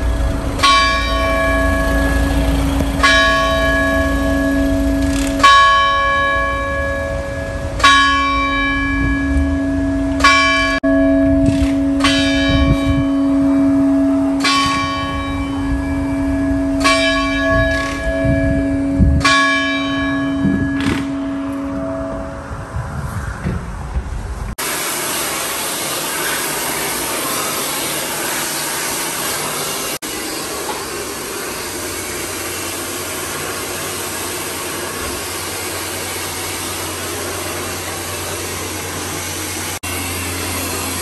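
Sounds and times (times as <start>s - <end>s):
large bell tolling: 0.0s - 23.0s.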